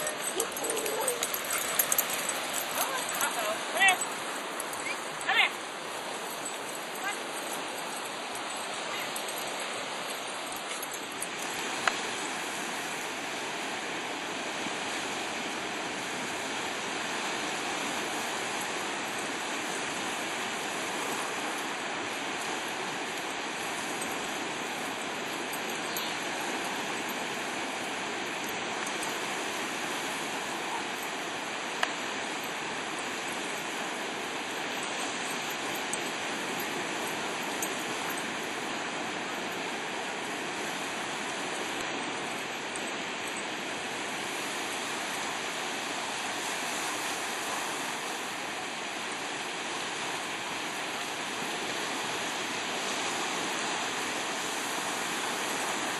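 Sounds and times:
small waves breaking on sand: 0:00.0 - 0:55.9.

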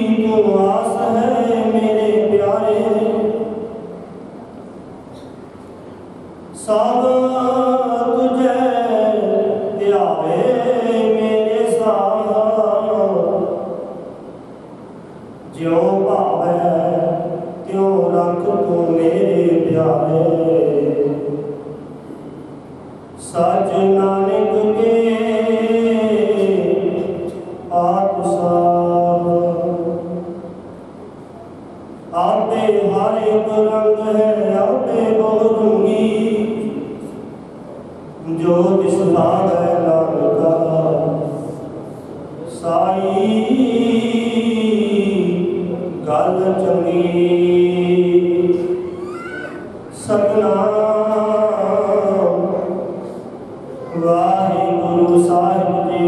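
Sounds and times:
man chanting through microphone: 0:00.0 - 0:04.3, 0:06.0 - 0:14.4, 0:15.4 - 0:56.0.

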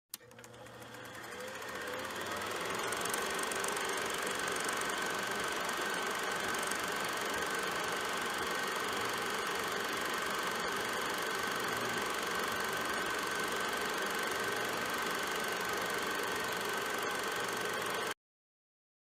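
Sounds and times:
film projector clatter and whine: 0:00.1 - 0:18.2.

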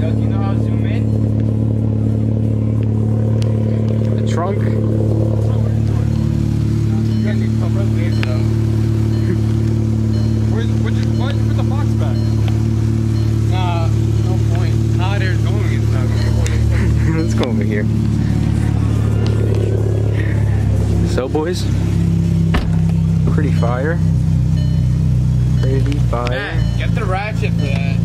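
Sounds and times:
people's voices: 0:00.0 - 0:24.2, 0:25.4 - 0:28.0
car engine idling: 0:00.0 - 0:28.0.

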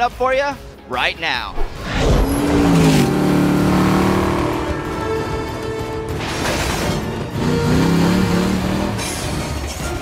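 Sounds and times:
film music: 0:00.0 - 0:10.0
car engine revving: 0:02.0 - 0:09.2.

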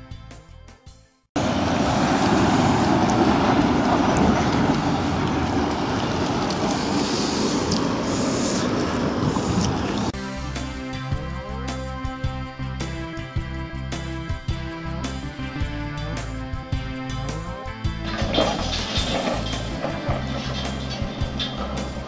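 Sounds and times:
road traffic rumble and hiss: 0:01.4 - 0:12.0, 0:12.6 - 0:22.0
quiet background music: 0:17.0 - 0:22.0.

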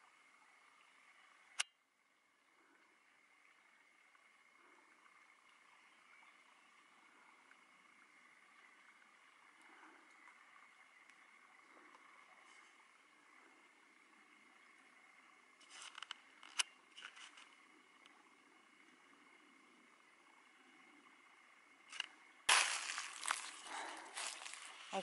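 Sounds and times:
faint steady hiss: 0:00.0 - 0:25.0
dry brush crackling and rustling: 0:22.5 - 0:25.0.

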